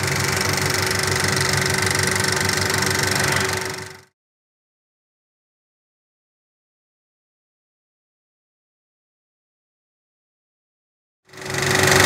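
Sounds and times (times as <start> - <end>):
film projector clatter: 0.0 - 4.1, 11.3 - 12.0
motor hum: 0.0 - 4.1, 11.3 - 12.0.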